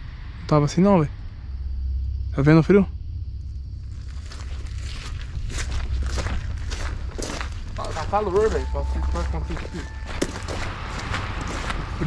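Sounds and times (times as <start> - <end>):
low rumble: 0.0 - 12.0
man speaking: 7.8 - 10.0.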